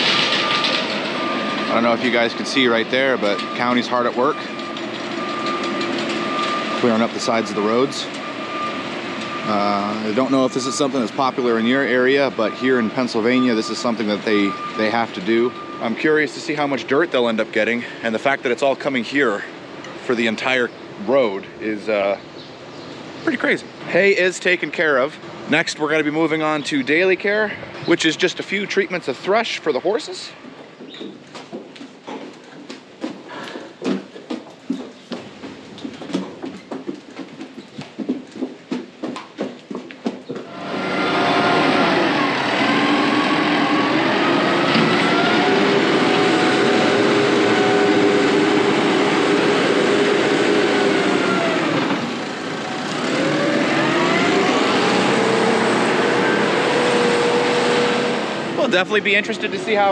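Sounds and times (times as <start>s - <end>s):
tractor diesel engine under load: 0.0s - 30.8s, 40.3s - 59.9s
irregular knocks and clicks: 30.5s - 40.5s.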